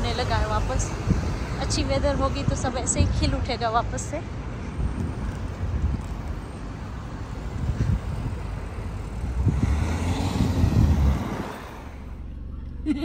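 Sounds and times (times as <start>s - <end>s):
cars driving past: 0.0s - 12.9s.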